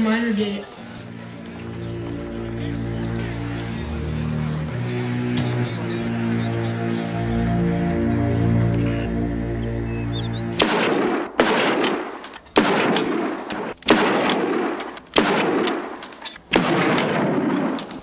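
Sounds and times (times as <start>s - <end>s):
held musical chord: 0.0s - 11.2s
gunshots with long tails: 10.6s - 18.0s.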